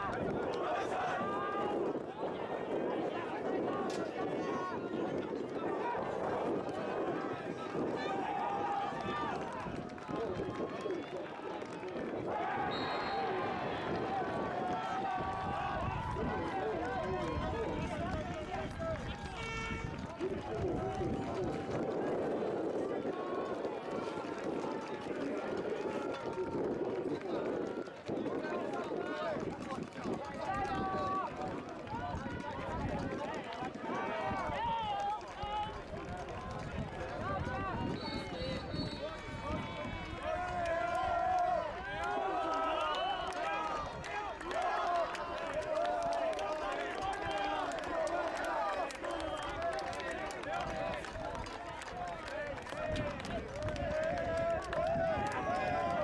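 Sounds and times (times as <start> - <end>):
babble of overlapping voices: 0.0 - 56.0.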